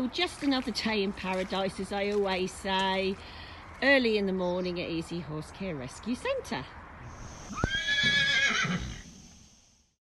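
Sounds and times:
horse whinnying: 0:07.3 - 0:09.1.

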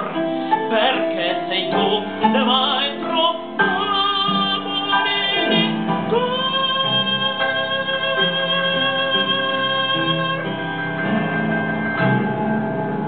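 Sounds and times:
instrumental accompaniment: 0:00.0 - 0:13.0.

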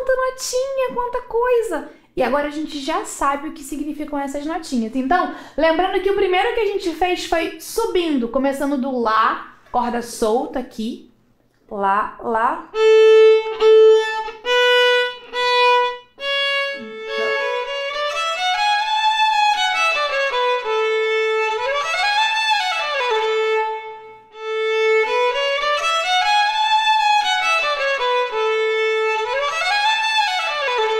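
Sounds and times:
violin playing: 0:12.7 - 0:30.9.

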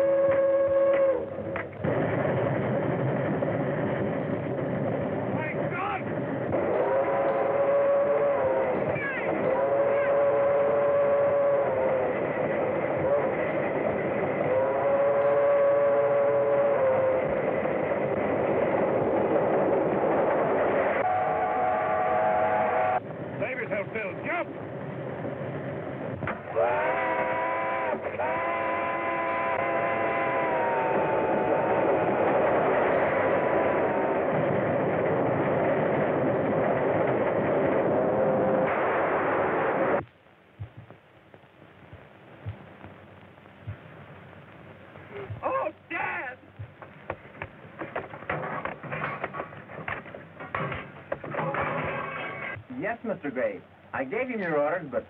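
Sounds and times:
steam whistle blasts: 0:00.0 - 0:01.4, 0:06.6 - 0:13.6, 0:14.4 - 0:17.5, 0:20.9 - 0:23.0, 0:26.5 - 0:34.2
steam train running: 0:00.0 - 0:40.0.

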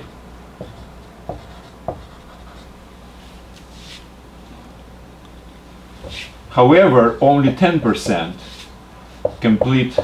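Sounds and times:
marker writing on whiteboard: 0:00.6 - 0:02.7, 0:07.2 - 0:10.0.

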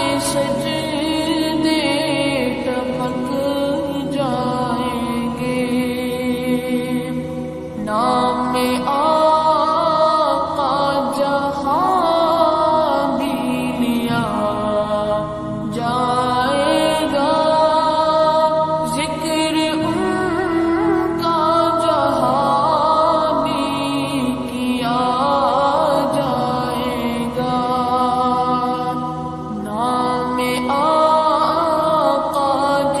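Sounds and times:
sung chant: 0:00.0 - 0:33.0.

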